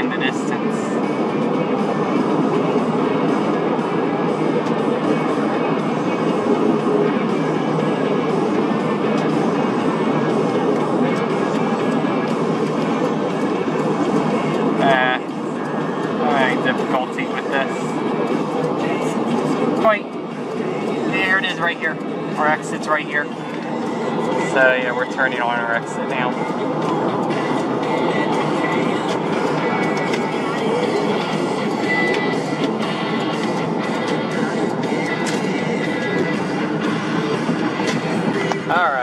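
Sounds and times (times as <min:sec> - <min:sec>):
road and tyre noise in car: 0:00.0 - 0:39.0.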